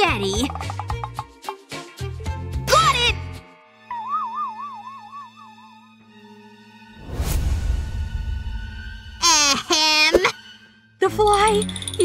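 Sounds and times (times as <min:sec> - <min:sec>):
warbling whistle-like tone: 0:03.9 - 0:05.9.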